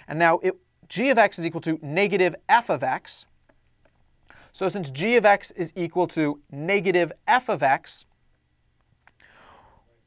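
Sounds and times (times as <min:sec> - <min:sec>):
soft breath drawn in: 0:09.2 - 0:09.9.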